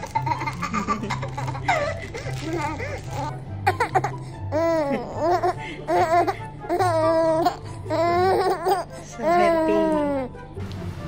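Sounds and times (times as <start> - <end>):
baby vocalizing: 1.7 - 10.3.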